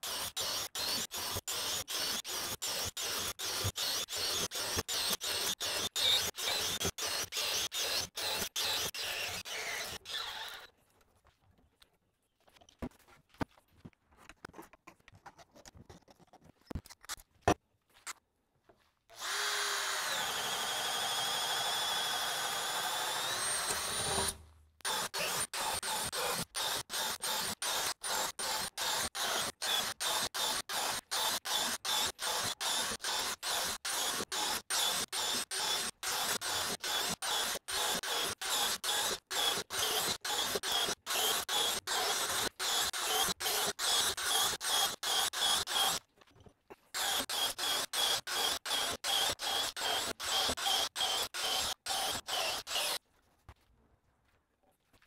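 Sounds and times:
drill boring through wood: 0.0 - 10.7, 19.1 - 46.0, 47.0 - 53.0.

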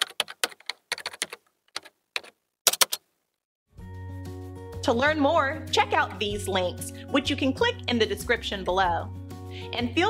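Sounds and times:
computer keyboard typing: 0.0 - 3.0.

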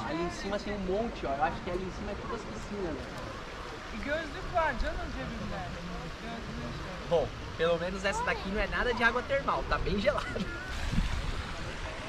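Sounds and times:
steady low background noise: 0.0 - 12.0.

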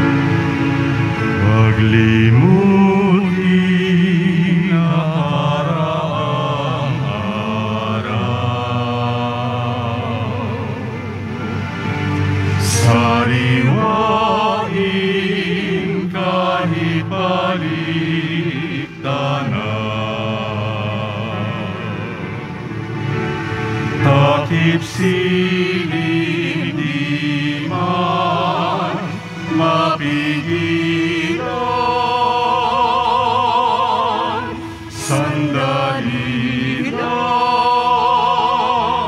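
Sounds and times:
sustained instrumental accompaniment: 0.0 - 39.0
voices singing a hymn: 0.0 - 39.0.

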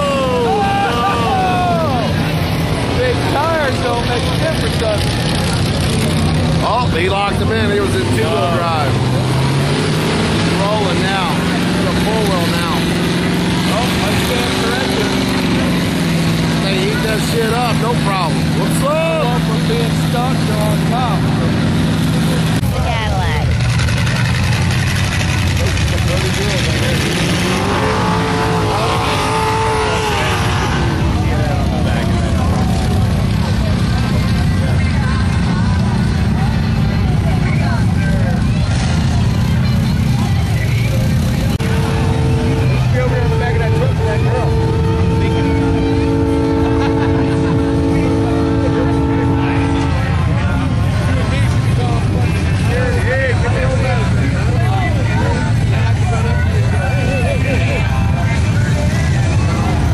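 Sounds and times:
crowd voices and shouting: 0.0 - 59.9
truck engine revving hard: 0.0 - 59.9.

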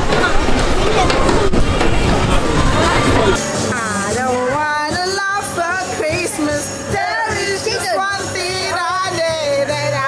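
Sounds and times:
distant voices: 0.0 - 3.4
fairground noise: 0.0 - 10.0.

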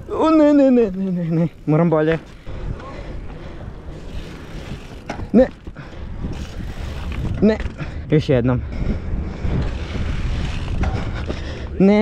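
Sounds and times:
bike frame rattling: 0.0 - 12.0
bike tyres rumbling on stone: 0.0 - 12.0.

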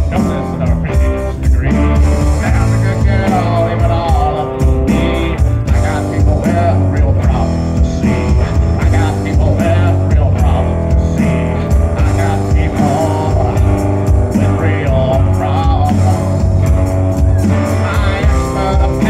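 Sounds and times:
electric guitar: 0.0 - 19.0
rock band playing: 0.0 - 19.0.

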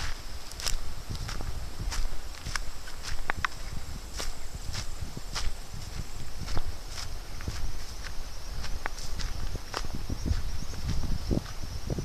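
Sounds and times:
footsteps on pine needles and twigs: 0.0 - 12.0.

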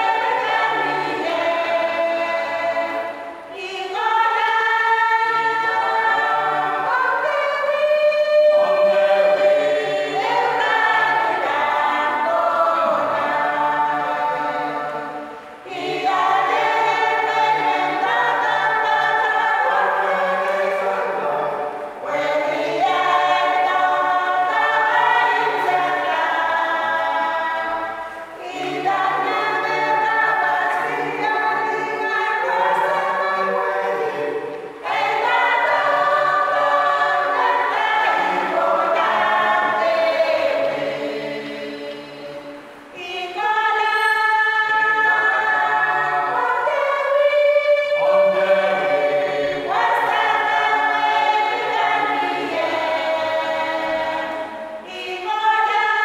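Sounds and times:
choir singing unaccompanied: 0.0 - 56.0.

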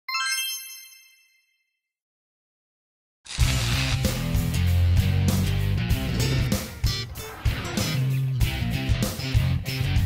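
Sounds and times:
bright bell-like chime: 0.1 - 1.8.

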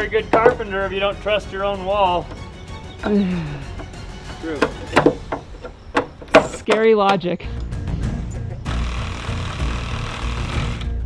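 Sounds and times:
hammer striking wood: 0.3 - 0.6, 4.6 - 6.8.

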